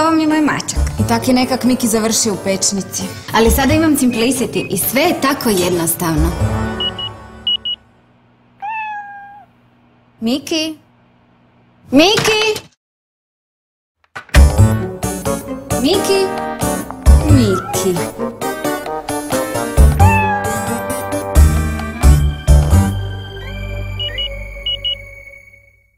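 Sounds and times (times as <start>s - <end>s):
high electronic beeps: 6.8s - 7.8s, 23.4s - 25.2s
cat meowing: 8.6s - 9.6s, 17.2s - 18.2s, 19.9s - 21.0s.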